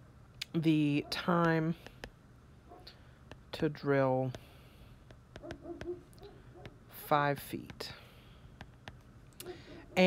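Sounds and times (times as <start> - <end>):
stylus tapping tablet screen: 1.1 - 2.2, 2.8 - 10.0.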